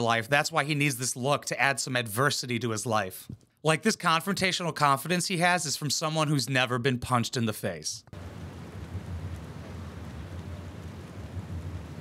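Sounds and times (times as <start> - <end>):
low rumble: 8.2 - 12.0
steady hiss: 8.2 - 12.0.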